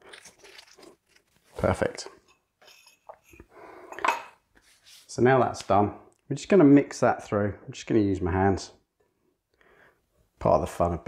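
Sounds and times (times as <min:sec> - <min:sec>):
dish scraping and clattering: 0:02.2 - 0:04.4.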